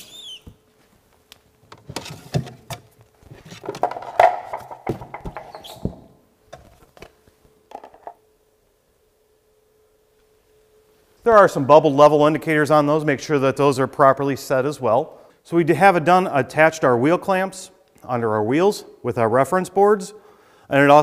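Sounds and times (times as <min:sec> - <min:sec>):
faint steady hum: 0:00.0 - 0:21.0
knocks and clicks of equipment handled: 0:01.7 - 0:08.2.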